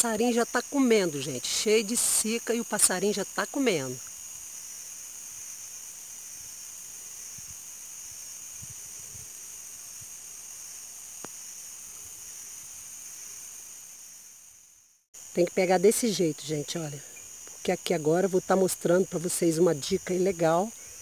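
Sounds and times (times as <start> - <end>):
high-pitched insect chorus: 0.0 - 21.0.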